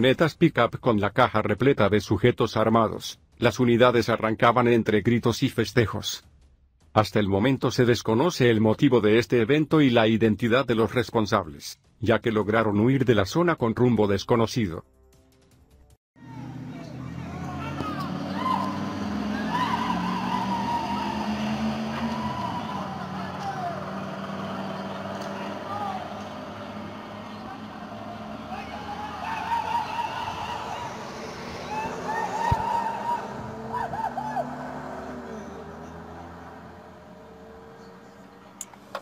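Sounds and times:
men shouting and whooping: 0:16.2 - 0:38.2
pickup truck engines revving: 0:16.2 - 0:39.0.

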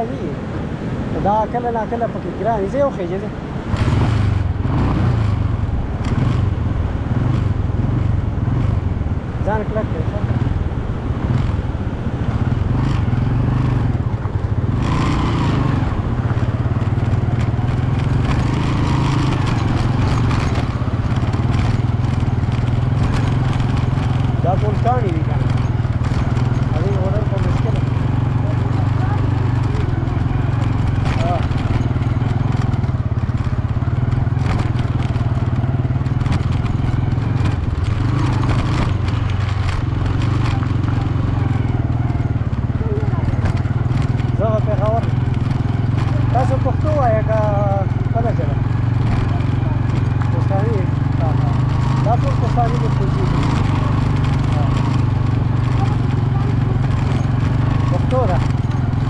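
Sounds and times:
vehicle engine drone: 0:00.0 - 0:59.0
faint voices: 0:22.0 - 0:36.2, 0:37.1 - 0:59.0.

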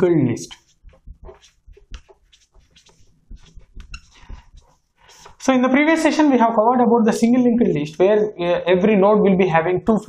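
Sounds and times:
marker scratching on whiteboard: 0:00.4 - 0:05.7
felt tip squeak: 0:00.8 - 0:05.4.

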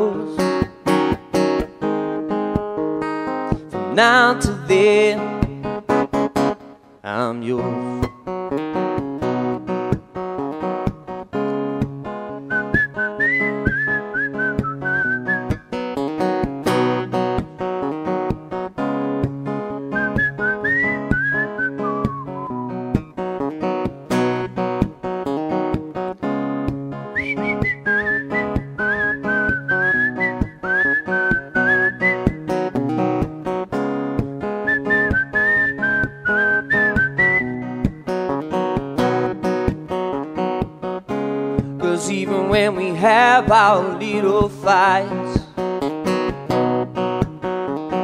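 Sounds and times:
acoustic guitar strumming: 0:00.0 - 0:48.0
person whistling melody: 0:12.4 - 0:15.8, 0:19.9 - 0:22.8, 0:27.1 - 0:32.6, 0:34.6 - 0:38.0.

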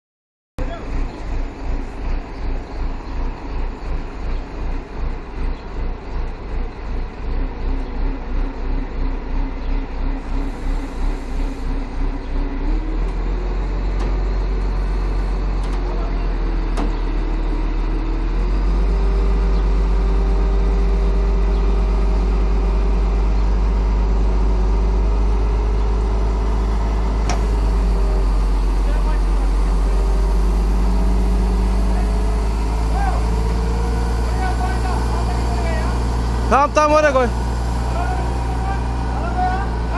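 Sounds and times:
diesel engine under load: 0:00.6 - 0:39.9.

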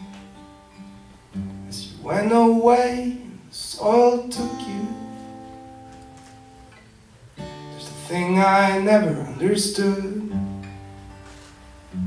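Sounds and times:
strummed acoustic guitar: 0:00.0 - 0:12.0
person singing: 0:01.8 - 0:05.2.

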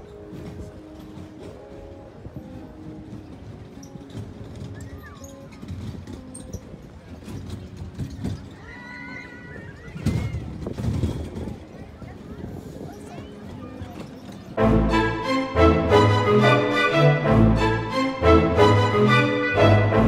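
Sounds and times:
chatter of passers-by: 0:00.0 - 0:20.0
faint music: 0:00.0 - 0:20.0.

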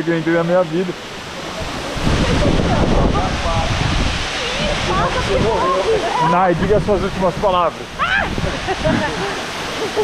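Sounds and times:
waterfall rushing: 0:00.0 - 0:10.0
water sloshing against microphone: 0:00.6 - 0:10.0.

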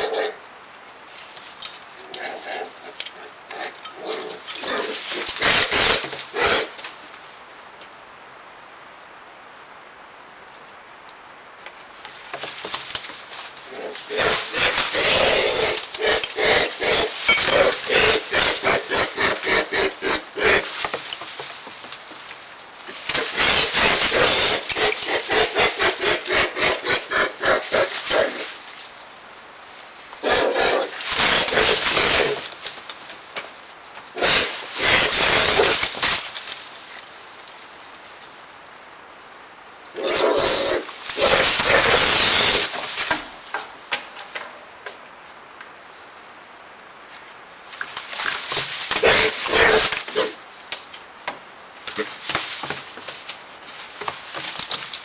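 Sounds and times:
young bird giving harsh rasping calls: 0:23.0 - 0:28.5.

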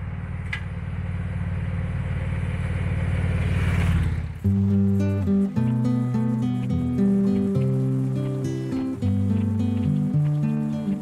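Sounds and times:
motorcycle engine running: 0:00.0 - 0:11.0
acoustic guitar music: 0:04.4 - 0:11.0.

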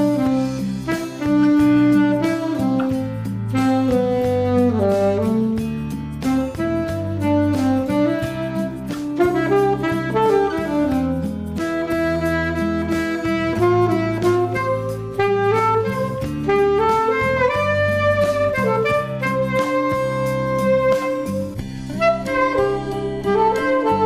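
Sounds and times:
alto saxophone melody: 0:00.0 - 0:24.0
backing accompaniment with low bass: 0:00.0 - 0:24.0.

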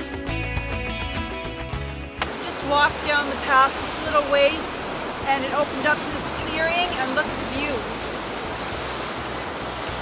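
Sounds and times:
surf on rocky shore: 0:01.9 - 0:10.0.

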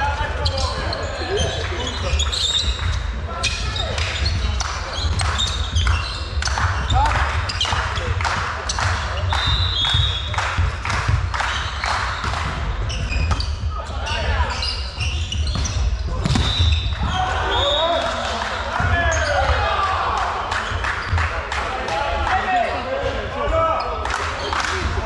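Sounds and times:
footwork on wooden court: 0:00.0 - 0:25.0
volleyball strikes: 0:15.4 - 0:19.7.

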